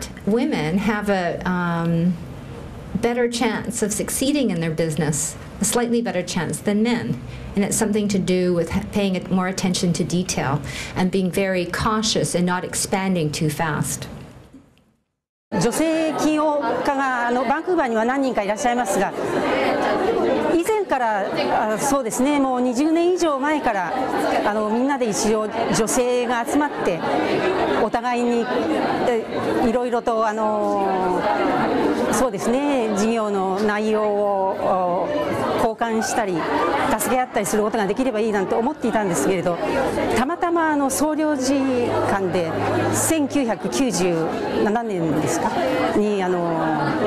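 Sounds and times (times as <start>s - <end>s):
woman speaking close to microphone: 0.0s - 2.2s, 3.0s - 14.1s, 15.6s - 19.2s, 20.5s - 27.0s, 27.8s - 31.3s, 32.1s - 47.0s
crowd chatter in a large hall: 15.6s - 47.0s.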